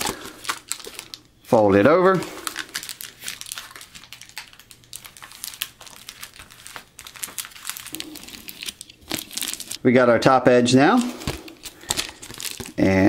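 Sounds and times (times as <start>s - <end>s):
foil insulation crinkling: 0.0s - 9.8s, 10.8s - 13.0s.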